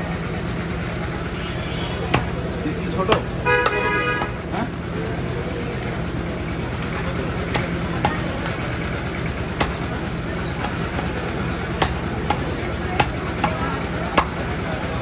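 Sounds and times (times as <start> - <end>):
low traffic hum: 0.0 - 15.0
cleaver chopping meat on wood: 2.1 - 2.4, 3.0 - 4.5, 7.5 - 8.6, 9.5 - 11.1, 11.8 - 14.4.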